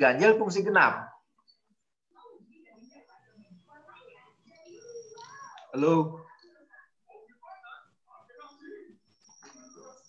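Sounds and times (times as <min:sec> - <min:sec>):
faint voices over video call: 0:00.0 - 0:10.0.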